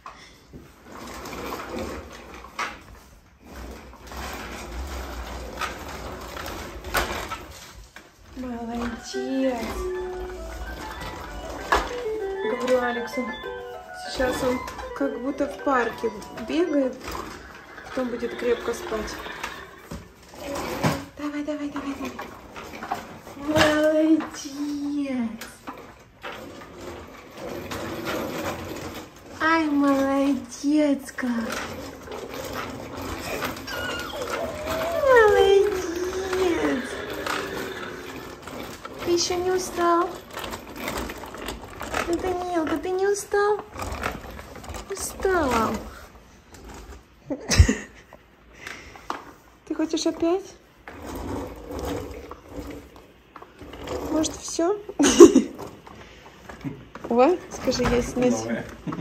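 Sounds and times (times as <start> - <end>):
plastic wheels rolling on hardwood: 0.0 - 59.0.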